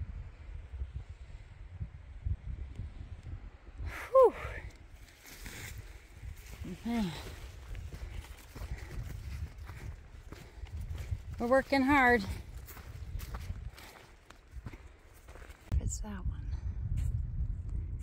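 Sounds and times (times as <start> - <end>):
wind buffeting microphone: 0.0 - 18.0
footfalls on dirt trail: 5.1 - 15.7.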